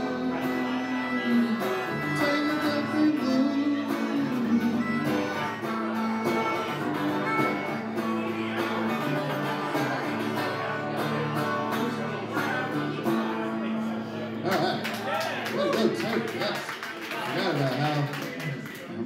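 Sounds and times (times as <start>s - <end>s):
harmonica long notes: 0.0s - 13.6s
electric guitar strumming: 0.0s - 14.5s.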